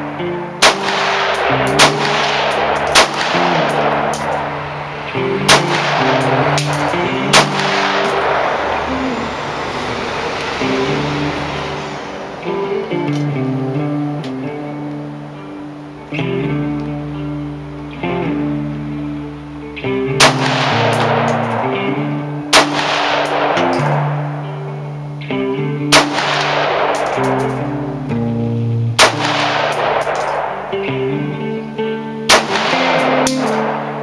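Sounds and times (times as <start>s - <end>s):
guitar music: 0.0s - 34.0s
rifle shots with echo: 0.6s - 8.9s, 20.2s - 24.5s, 25.9s - 27.7s, 29.0s - 30.9s, 32.3s - 34.0s.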